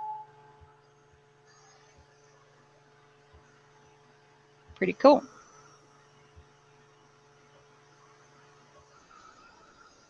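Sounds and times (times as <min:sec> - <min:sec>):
heat tool fan humming: 0:00.0 - 0:10.0.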